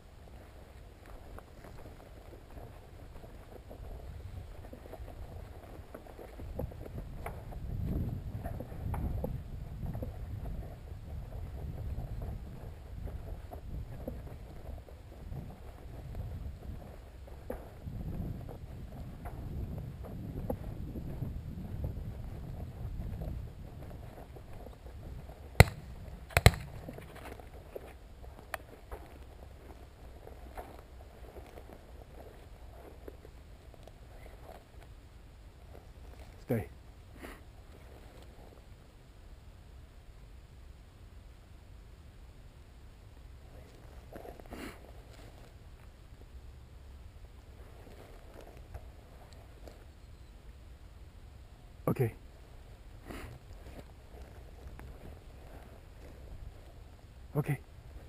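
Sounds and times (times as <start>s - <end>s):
footsteps through dry grass: 0.0s - 36.4s, 53.1s - 57.2s
wind rumble on microphone: 0.0s - 58.0s
sharp clicks: 25.6s - 26.9s.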